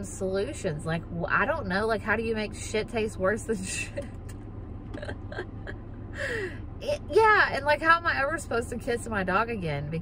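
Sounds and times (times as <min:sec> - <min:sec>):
low hum in car cabin: 0:00.0 - 0:10.0
woman laughing softly: 0:04.9 - 0:06.6.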